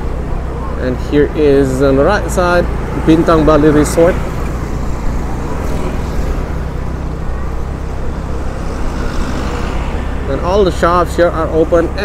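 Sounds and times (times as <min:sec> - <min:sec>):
street traffic rumble: 0:00.0 - 0:12.0.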